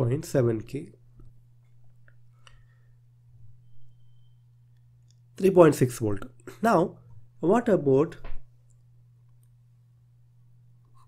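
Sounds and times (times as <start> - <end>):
person speaking: 0.0 - 1.0, 5.3 - 8.4
low electrical hum: 0.0 - 11.0.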